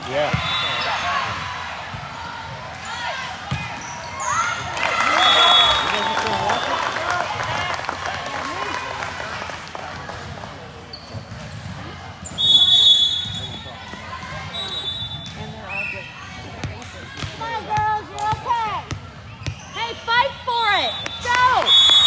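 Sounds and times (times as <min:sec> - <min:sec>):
voices echoing in gym: 0:00.0 - 0:22.0
referee's whistle blast: 0:05.0 - 0:06.8, 0:12.3 - 0:13.6, 0:20.7 - 0:22.0.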